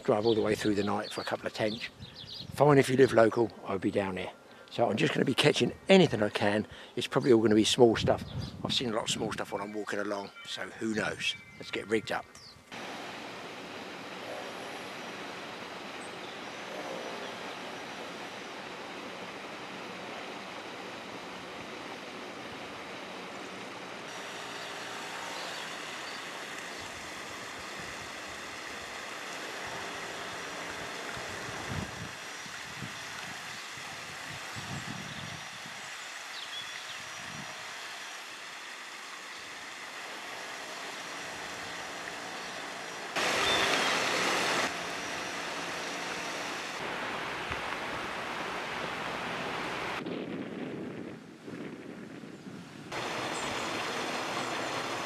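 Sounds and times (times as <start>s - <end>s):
steady rushing noise: 12.7s - 34.5s, 40.2s - 55.0s
loud burst of noise: 12.7s - 35.8s, 37.0s - 50.9s, 52.8s - 55.0s.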